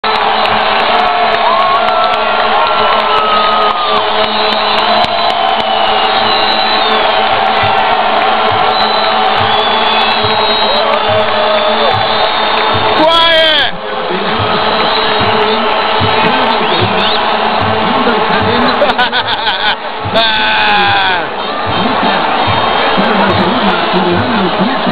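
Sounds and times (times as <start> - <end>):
stadium crowd cheering and chanting: 0.0 - 24.9.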